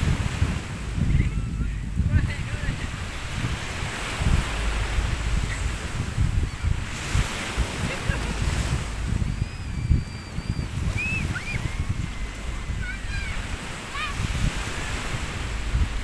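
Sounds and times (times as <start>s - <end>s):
surf washing onto beach: 0.0s - 16.0s
wind buffeting microphone: 0.0s - 16.0s
high wavering calls: 4.5s - 14.3s.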